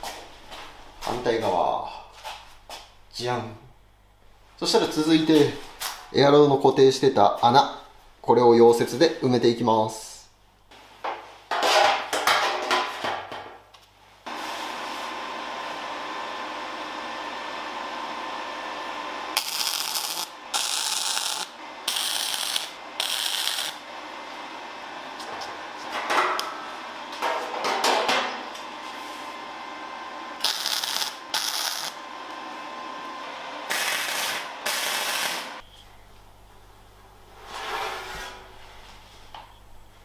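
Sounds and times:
machine hum: 14.3 - 40.0
welder arc bursts: 19.3 - 23.9, 30.4 - 32.0, 33.6 - 35.6.

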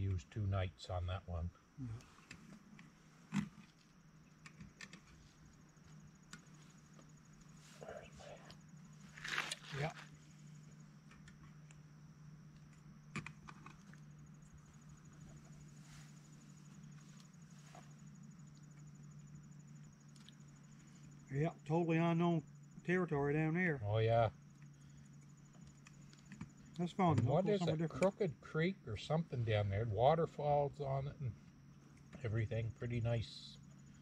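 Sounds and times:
insect trill: 0.0 - 34.0
steady low hum: 0.0 - 34.0.

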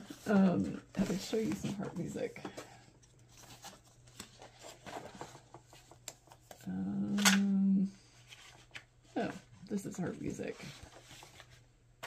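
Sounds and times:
paper rustling: 0.0 - 6.7, 10.6 - 11.7.

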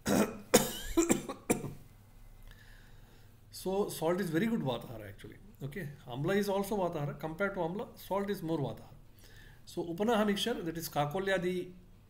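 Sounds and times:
man coughing: 0.0 - 1.8.

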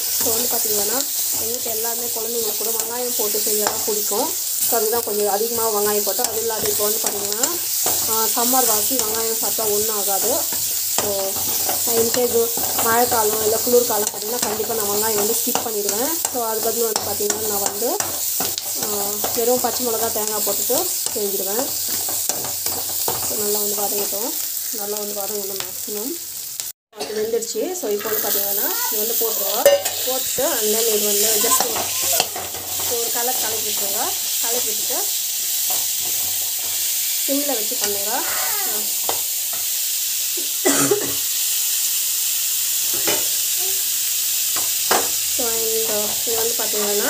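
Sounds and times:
spoon scraping pan: 0.0 - 24.7, 27.9 - 38.1
onions sizzling in oil: 0.0 - 47.0.

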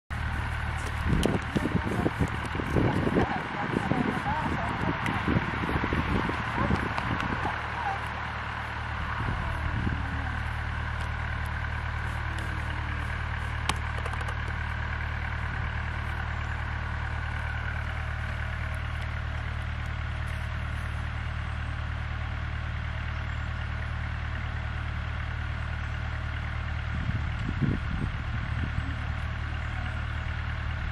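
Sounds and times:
low motor hum: 0.1 - 30.9.

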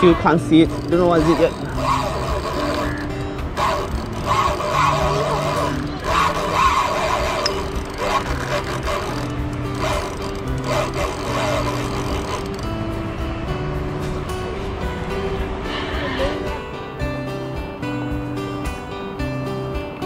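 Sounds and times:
melody of held notes: 0.0 - 20.0.

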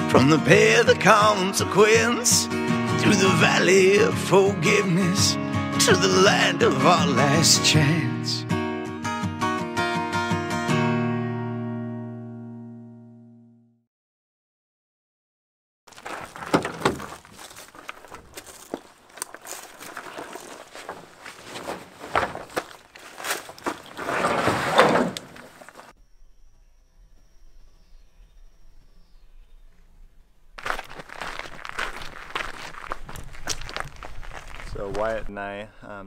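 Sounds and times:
footsteps: 15.9 - 25.9, 30.6 - 35.2.

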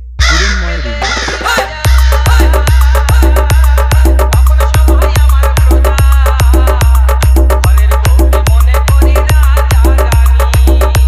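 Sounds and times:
deep bass hum: 0.0 - 11.0
processed voice sample: 0.0 - 11.0
drum beat with bass kicks: 1.0 - 11.0.

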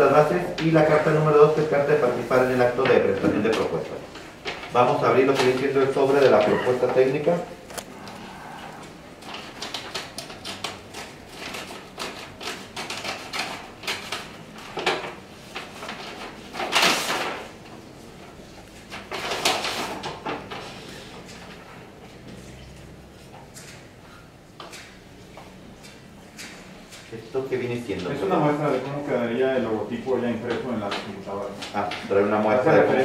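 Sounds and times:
paper rustling and crinkling: 0.0 - 24.0, 26.8 - 33.0.

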